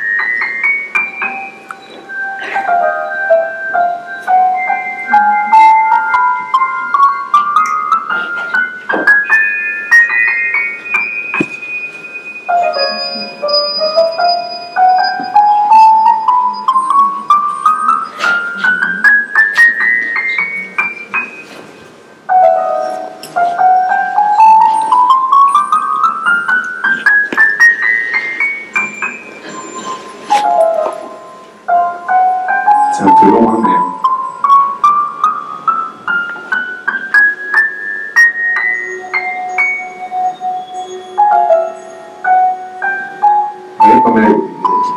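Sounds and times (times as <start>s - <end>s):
synthesized piano-like notes: 0.0s - 44.9s.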